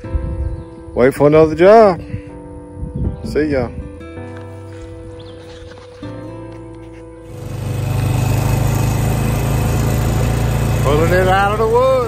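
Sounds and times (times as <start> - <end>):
small vehicle engine running: 7.3 - 12.0.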